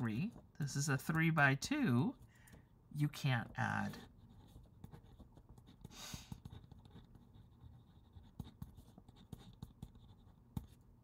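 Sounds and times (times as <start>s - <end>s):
pen scratching on paper: 3.1s - 11.0s.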